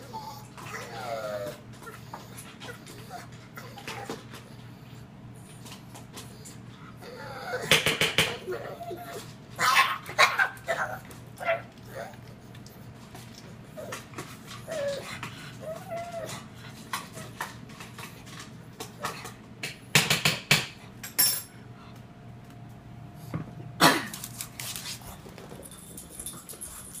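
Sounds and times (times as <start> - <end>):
dog claws clicking on tile: 24.1 - 27.0.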